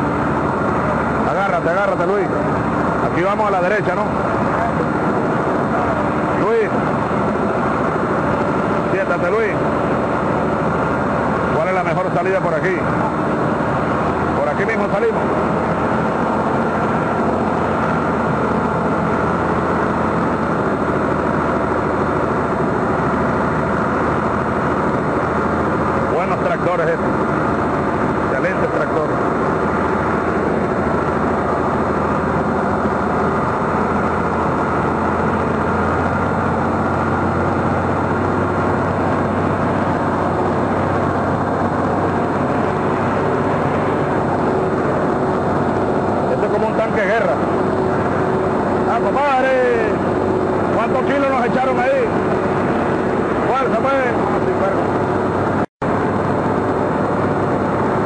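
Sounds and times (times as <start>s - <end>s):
vehicle engine droning: 0.0s - 58.0s
faint voices: 0.8s - 6.8s.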